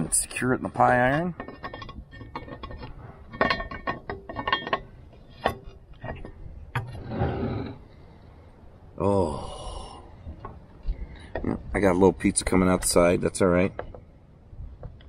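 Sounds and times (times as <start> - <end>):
metal clinks and clanks: 0.8 - 6.9
metal knocks: 0.8 - 7.0
scrape against table: 6.9 - 7.8.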